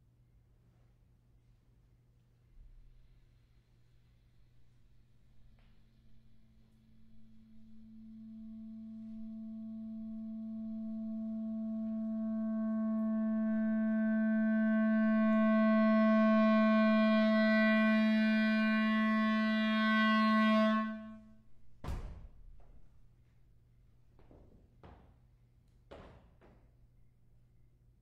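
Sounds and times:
clarinet long low note: 5.5s - 21.4s.

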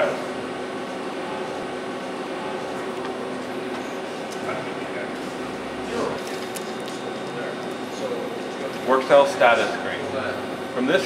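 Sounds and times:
machinery hum and hiss: 0.0s - 11.0s.

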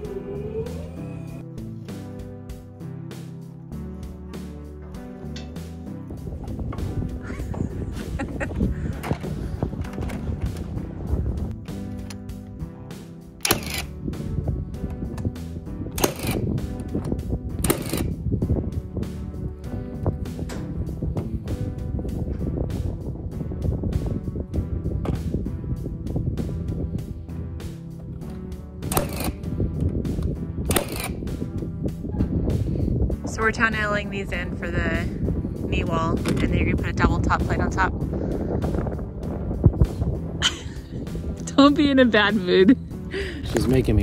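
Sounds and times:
background music: 0.0s - 44.0s
nail gun bang: 13.4s - 13.9s, 16.0s - 16.4s, 17.6s - 18.1s, 28.8s - 29.4s, 30.7s - 31.2s.

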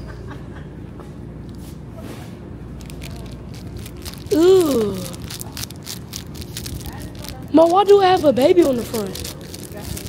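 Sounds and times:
store background hum: 0.0s - 10.0s
plastic packaging crackling: 2.7s - 10.0s.

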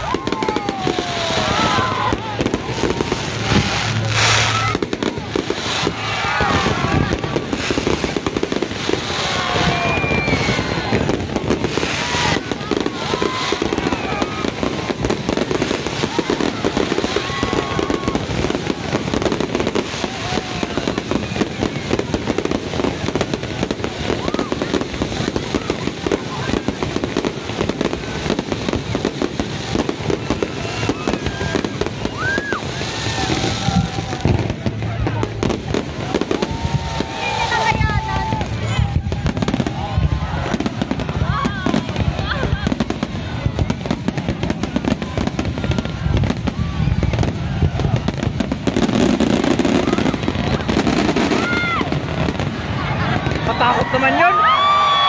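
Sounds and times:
fireworks bangs and crackling: 0.0s - 55.0s.

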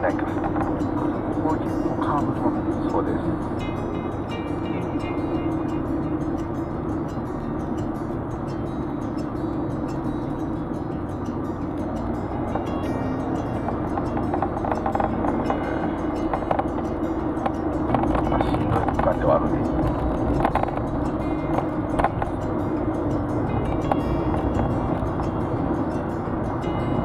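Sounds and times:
car engine and tyre noise: 0.0s - 27.0s.

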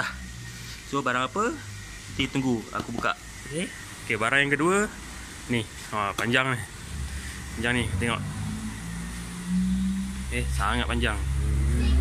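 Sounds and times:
engine hum: 0.0s - 12.0s
droning tone: 6.7s - 12.0s.

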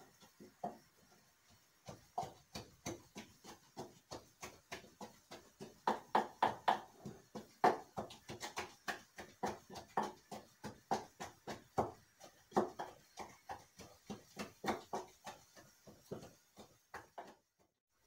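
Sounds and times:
pestle pounding in wooden mortar: 1.6s - 17.4s.

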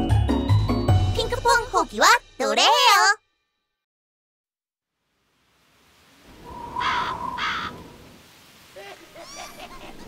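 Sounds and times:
crow cawing: 6.8s - 7.9s.

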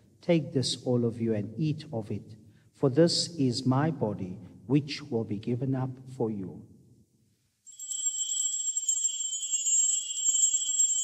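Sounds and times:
altar bells jingling: 7.7s - 11.0s.

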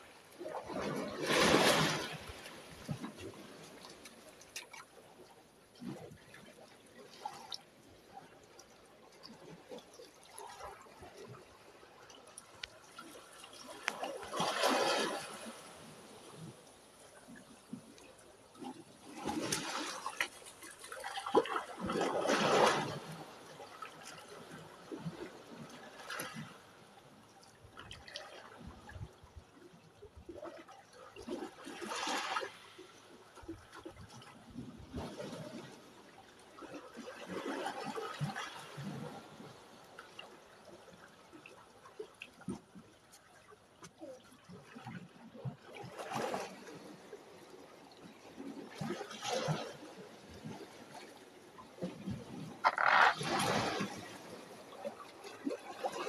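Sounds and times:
seawater lapping at shoreline: 0.0s - 56.0s
small water splashes: 0.0s - 56.0s
seawater sloshing on rocks: 0.3s - 5.0s, 48.4s - 56.0s.

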